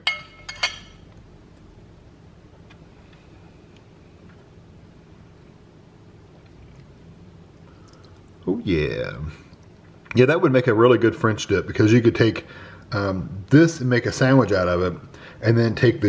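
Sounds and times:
metal fork clinking on plate: 0.0s - 1.0s.

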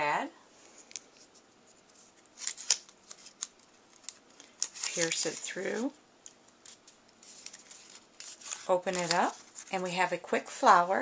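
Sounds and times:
paper rustling and crackling: 1.1s - 5.9s, 6.5s - 9.9s.

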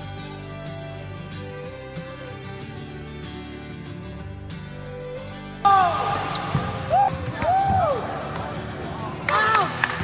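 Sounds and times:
guitar music: 0.0s - 10.0s
volleyball being hit: 5.9s - 8.1s.

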